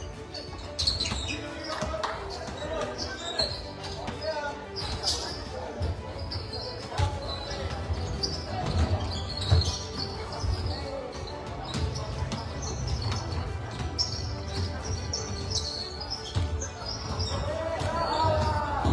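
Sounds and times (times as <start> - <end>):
voices in large hall: 0.0 - 18.9.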